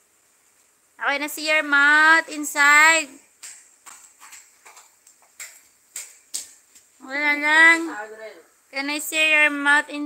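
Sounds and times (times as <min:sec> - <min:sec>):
soft irregular clicks and taps: 0:03.4 - 0:06.9.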